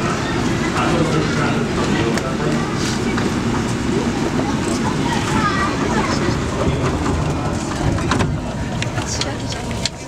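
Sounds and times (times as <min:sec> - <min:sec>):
passengers talking: 0:00.0 - 0:10.0
train carriage rumble: 0:00.0 - 0:10.0.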